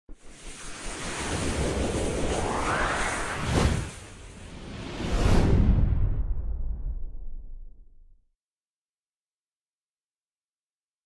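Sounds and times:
whoosh sound effect: 0:00.2 - 0:06.4.

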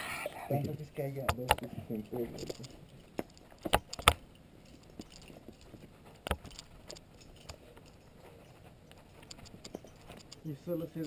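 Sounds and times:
carabiners clinking: 0:00.5 - 0:11.0.

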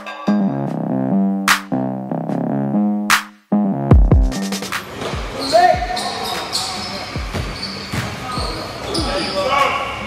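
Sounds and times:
sneaker squeaks: 0:04.9 - 0:10.0
voices echoing: 0:05.0 - 0:10.0.

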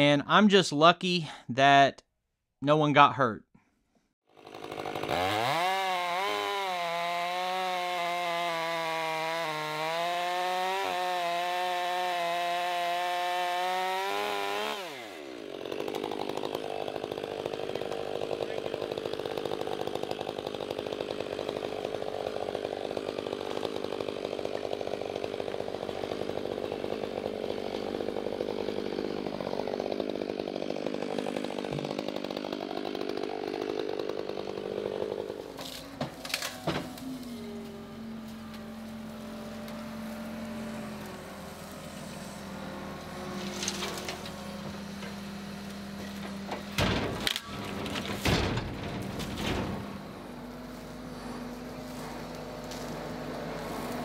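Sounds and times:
chainsaw cutting wood: 0:04.3 - 0:54.0
chainsaw idling: 0:04.3 - 0:54.0
diesel loader running: 0:35.4 - 0:54.0.

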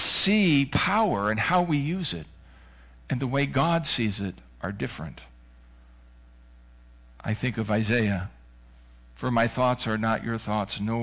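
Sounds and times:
man speaking: 0:00.0 - 0:02.3, 0:03.1 - 0:05.4, 0:07.2 - 0:08.4, 0:09.2 - 0:11.0
electrical mains hum: 0:00.0 - 0:11.0.

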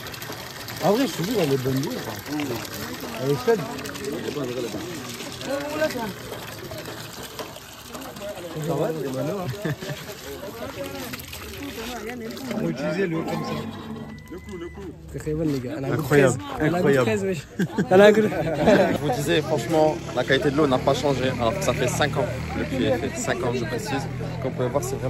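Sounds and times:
water pouring into bucket: 0:00.0 - 0:25.0
people talking: 0:07.9 - 0:25.0.

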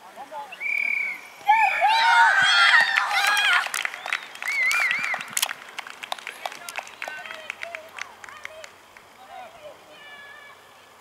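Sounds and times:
children shouting: 0:01.4 - 0:03.8
hand clapping: 0:02.8 - 0:09.1.

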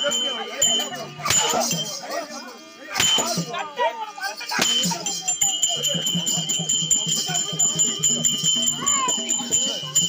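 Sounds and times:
high bells ringing: 0:00.0 - 0:10.0.

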